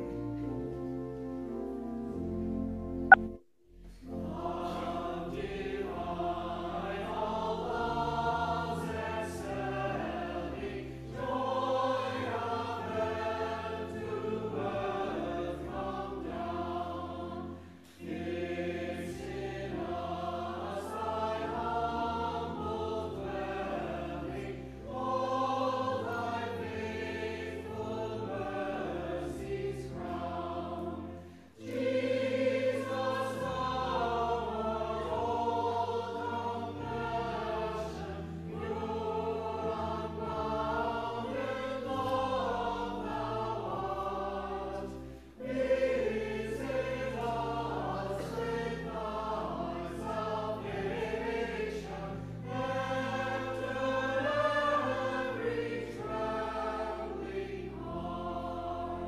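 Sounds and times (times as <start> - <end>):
church choir singing: 0.0 - 59.0
low sustained accompaniment notes: 0.0 - 59.0.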